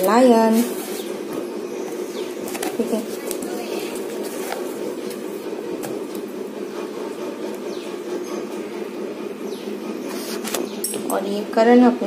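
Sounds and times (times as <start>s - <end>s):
appliance drone: 0.0s - 12.0s.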